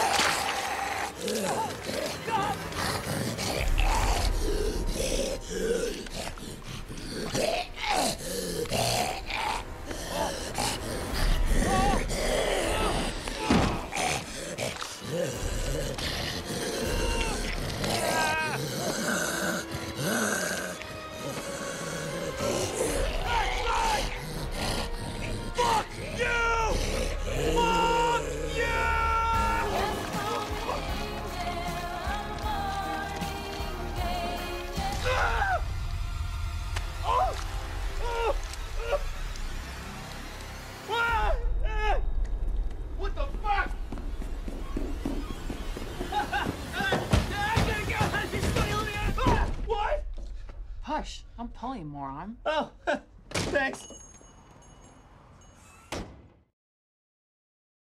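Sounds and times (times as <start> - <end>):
tense music score: 0.0 - 53.3
man grunting and groaning: 7.0 - 16.0, 16.6 - 30.8, 35.0 - 35.7.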